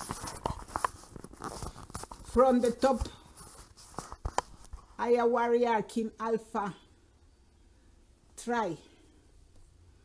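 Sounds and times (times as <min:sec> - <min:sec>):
headphones and cable handled: 0:00.0 - 0:05.0.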